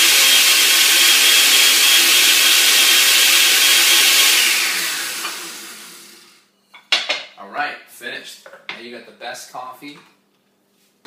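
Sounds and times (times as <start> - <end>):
blender motor winding down: 0.0 - 6.4
blender running: 0.0 - 6.4.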